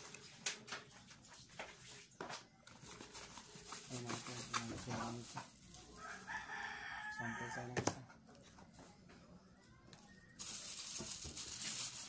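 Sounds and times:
plastic packaging rustling: 2.6s - 6.8s, 10.4s - 12.0s
rooster crowing: 5.9s - 7.8s.

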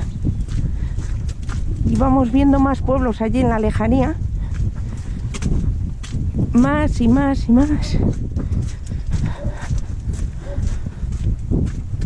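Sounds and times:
footsteps on stone: 0.0s - 12.0s.

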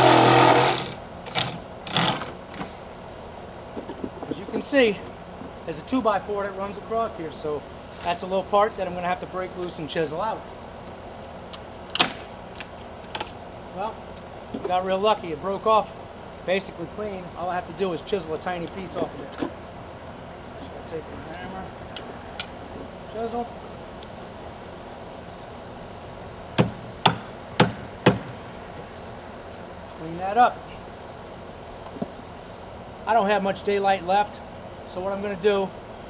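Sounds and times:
hammer striking a chisel: 26.6s - 28.4s.

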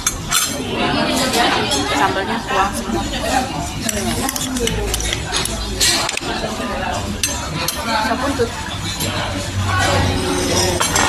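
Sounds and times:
dishes and cutlery clinking: 0.0s - 11.0s
background voices: 0.4s - 11.0s.

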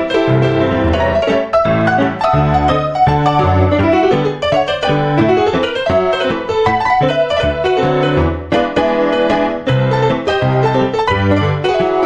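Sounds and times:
solo digital piano: 0.0s - 12.0s.

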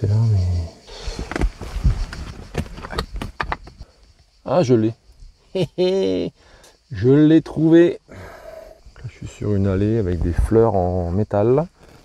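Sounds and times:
stones knocking and scraping: 1.2s - 3.8s.

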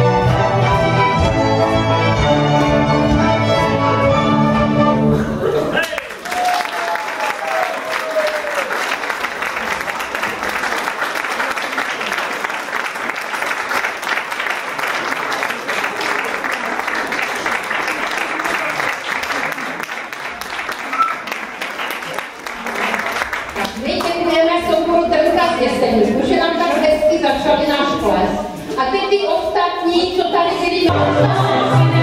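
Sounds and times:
audience applauding: 5.7s - 24.3s.

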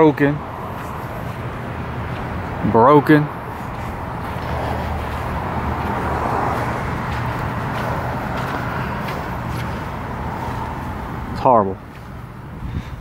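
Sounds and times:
motor vehicle rumble: 0.0s - 13.0s.

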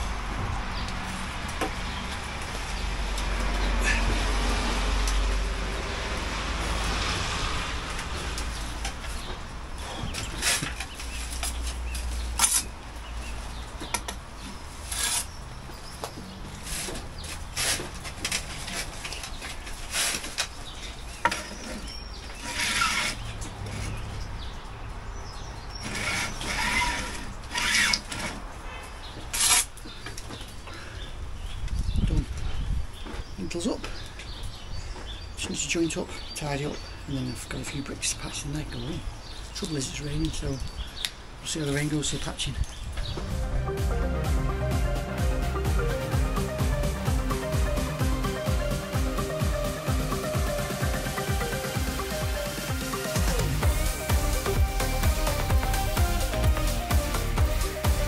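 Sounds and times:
low rumble: 43.1s - 49.1s.

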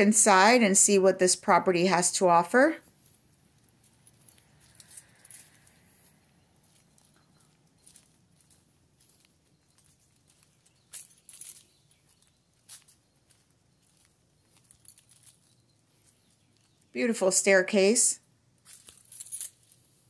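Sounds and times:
footsteps scuffing on concrete: 2.9s - 16.8s.

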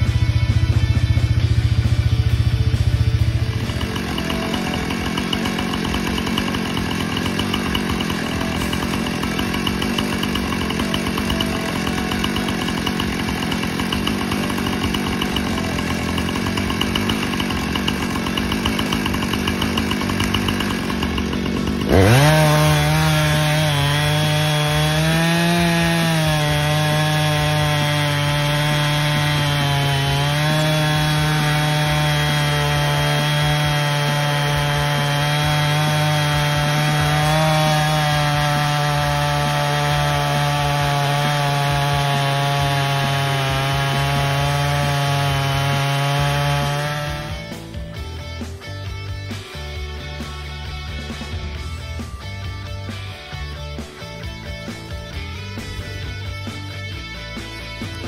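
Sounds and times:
chainsaw ripping a log: 0.0s - 58.0s.

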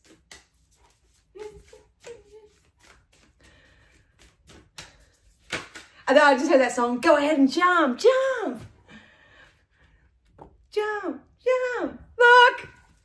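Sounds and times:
cards shuffling: 0.0s - 6.0s.

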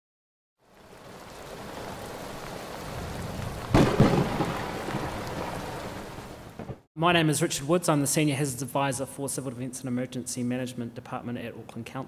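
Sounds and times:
steady rain: 0.6s - 6.9s
thunder rumbling: 1.1s - 6.8s
thunder cracking: 2.8s - 6.9s.

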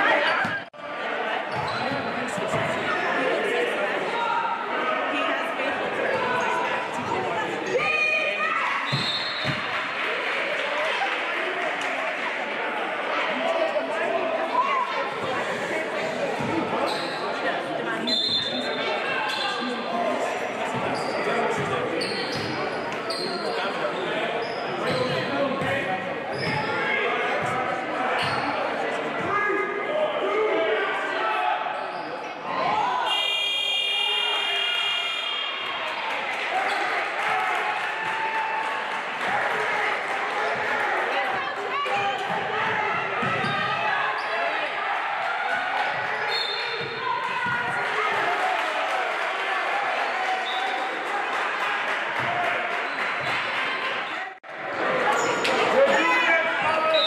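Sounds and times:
voices echoing in a hall: 0.0s - 57.0s
sneaker squeaks: 0.2s - 0.7s, 1.5s - 2.6s, 8.8s - 9.7s, 16.4s - 17.4s, 18.0s - 19.7s, 20.7s - 25.7s, 26.3s - 27.5s, 28.1s - 28.6s, 42.1s - 44.5s, 46.0s - 47.6s.

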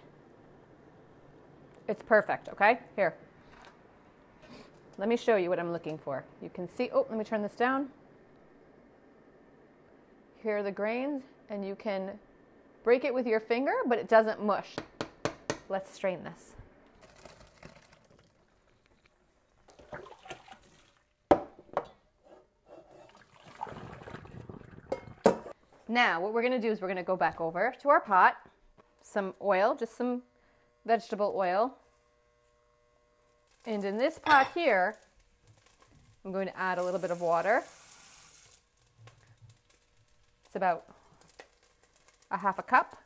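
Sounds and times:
tap water running into pot: 17.1s - 21.5s, 23.0s - 25.6s, 34.6s - 39.9s
water pouring through rice: 19.7s - 21.0s, 23.1s - 24.9s.

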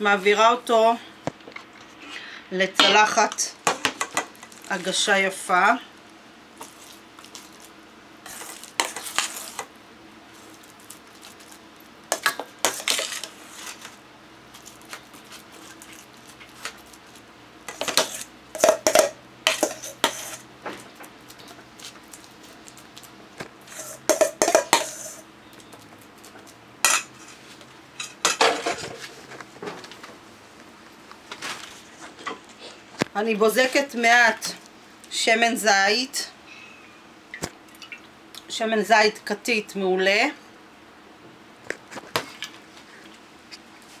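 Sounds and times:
masher scraping metal bowls: 17.7s - 20.5s, 23.7s - 25.2s.

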